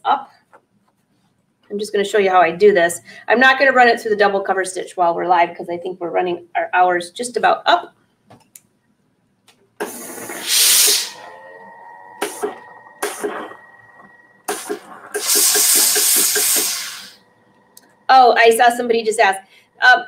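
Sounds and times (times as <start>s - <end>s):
steam iron hissing: 9.8s - 11.4s, 12.2s - 17.2s.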